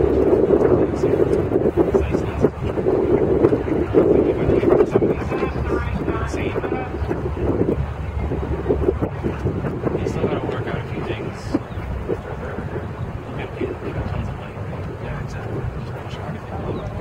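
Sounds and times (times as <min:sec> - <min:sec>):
indistinct voices: 0:00.0 - 0:17.0
wind buffeting microphone: 0:00.0 - 0:17.0.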